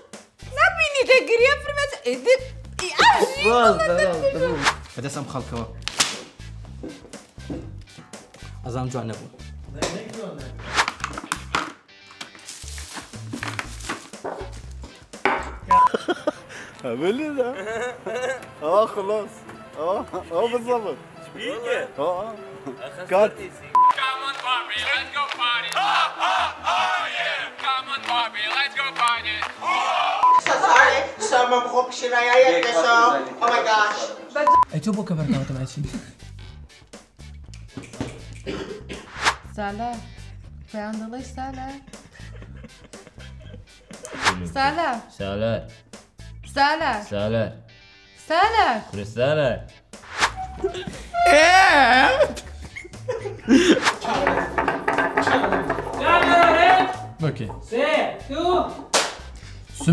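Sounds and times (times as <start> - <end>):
bass beat of background music: 2.5 - 11.8, 12.7 - 15.9
sharp whip-like crack: 4.6 - 4.9, 5.9 - 6.4, 10.6 - 11.1, 39.1 - 39.5, 44.0 - 44.4, 50.1 - 50.4, 58.9 - 59.3.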